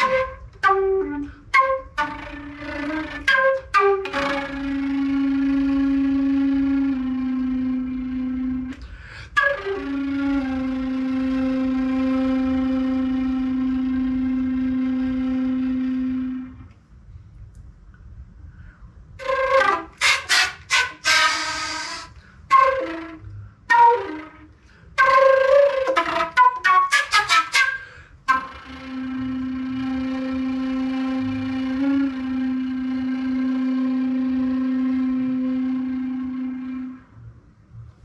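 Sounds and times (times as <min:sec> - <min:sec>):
concert flute low note: 0:00.0 - 0:16.8, 0:18.6 - 0:38.0.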